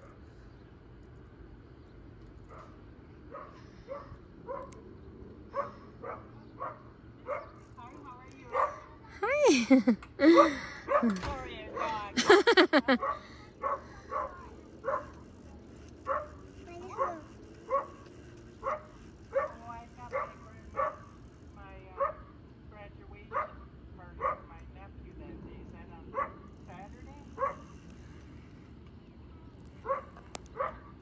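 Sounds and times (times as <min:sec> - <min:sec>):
dog barking: 0:02.5 - 0:04.8, 0:05.5 - 0:07.6, 0:08.5 - 0:08.9, 0:10.8 - 0:12.0, 0:13.0 - 0:15.3, 0:16.0 - 0:18.0, 0:18.6 - 0:21.2, 0:22.0 - 0:22.3, 0:23.3 - 0:24.5, 0:26.1 - 0:26.5, 0:27.3 - 0:27.8, 0:29.8 - 0:31.0.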